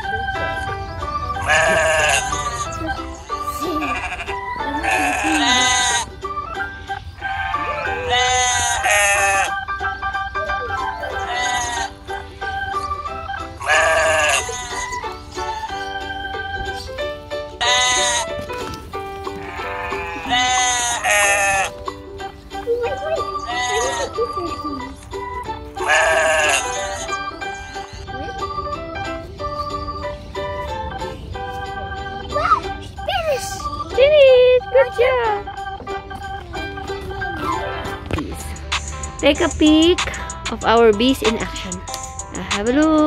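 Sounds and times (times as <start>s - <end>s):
background music: 0.0s - 43.0s
sheep bleating: 1.4s - 2.7s, 3.8s - 6.1s, 7.2s - 9.5s, 11.2s - 12.0s, 13.6s - 15.0s, 17.6s - 18.3s, 19.4s - 21.7s, 23.4s - 24.2s, 25.8s - 27.2s.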